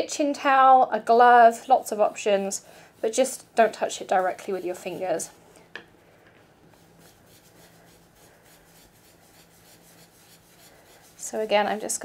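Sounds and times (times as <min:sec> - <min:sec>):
brush swishing on paper: 0:01.3 - 0:05.4, 0:06.7 - 0:12.0.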